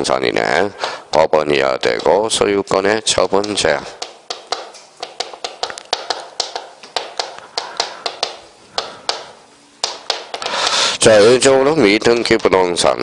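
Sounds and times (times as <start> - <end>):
chalk tapping on chalkboard: 1.7 - 2.2, 3.2 - 10.8.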